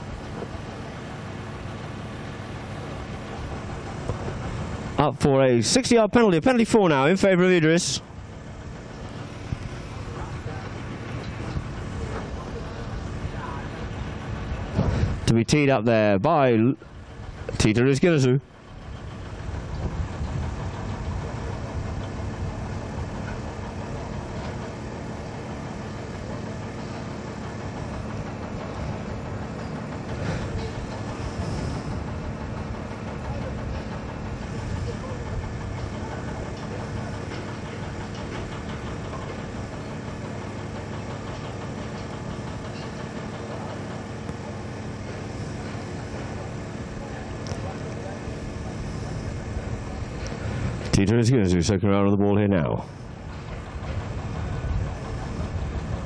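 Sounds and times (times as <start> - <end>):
motor idling with low hum: 0.0 - 56.0.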